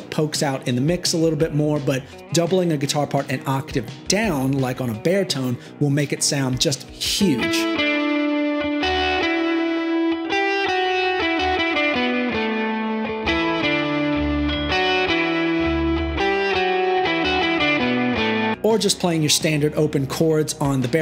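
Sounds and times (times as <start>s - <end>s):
baritone guitar: 0.0s - 21.0s
electric guitar lead line: 7.2s - 18.6s.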